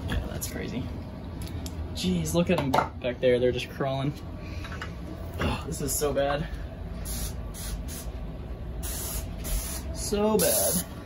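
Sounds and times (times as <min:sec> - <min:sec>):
sprayer hissing: 0:07.0 - 0:08.1, 0:08.8 - 0:10.9.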